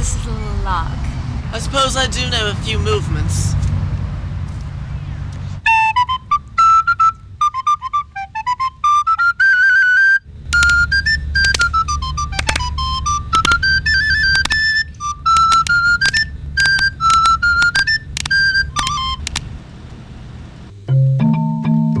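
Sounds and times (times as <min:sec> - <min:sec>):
low rumble: 0:00.0 - 0:07.5
end-blown flute melody: 0:05.6 - 0:19.4.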